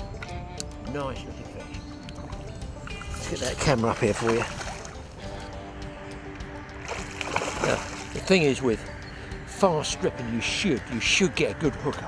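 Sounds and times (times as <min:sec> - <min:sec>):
background music with sustained tones: 0:00.0 - 0:12.0
fish splashing at the surface: 0:06.8 - 0:08.3.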